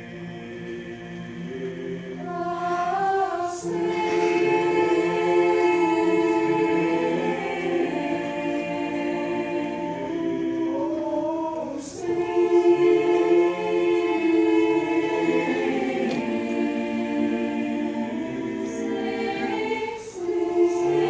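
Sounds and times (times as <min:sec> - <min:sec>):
mixed choir singing held chords: 0:00.0 - 0:21.0.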